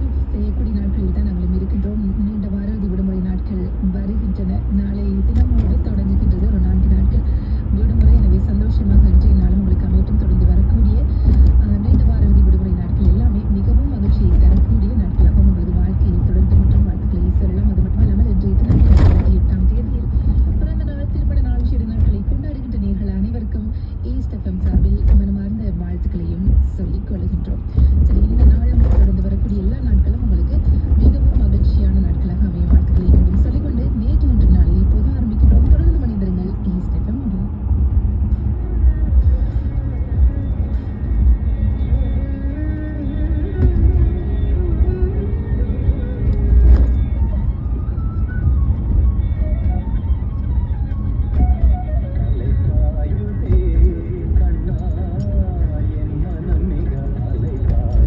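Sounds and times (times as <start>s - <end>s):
car road and engine rumble: 0.0s - 58.0s
radio music with singing: 0.0s - 58.0s.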